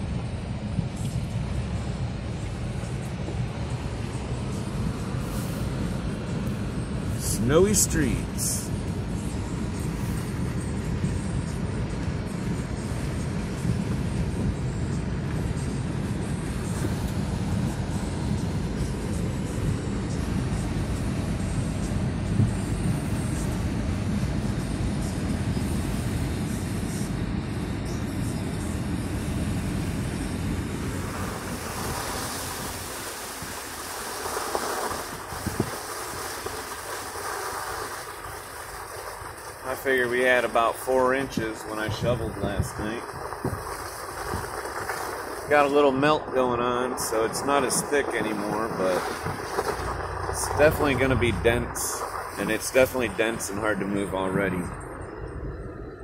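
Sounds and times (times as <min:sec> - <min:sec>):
car tyres and engine rumble: 0:00.0 - 0:56.0
hiss: 0:05.1 - 0:05.9, 0:30.8 - 0:40.6, 0:41.2 - 0:45.9.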